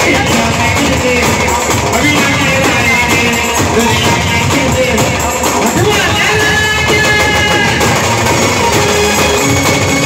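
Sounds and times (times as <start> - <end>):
brass band melody: 0.0 - 10.0
hand drum rhythm: 0.0 - 10.0.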